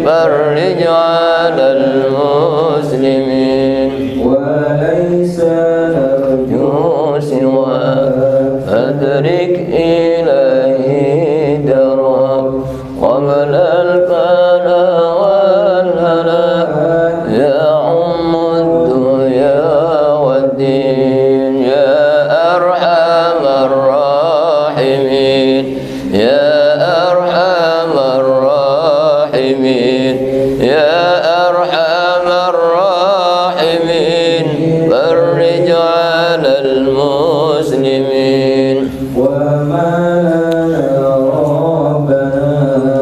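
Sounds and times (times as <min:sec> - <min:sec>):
person chanting devotional verses: 0:00.0 - 0:43.0.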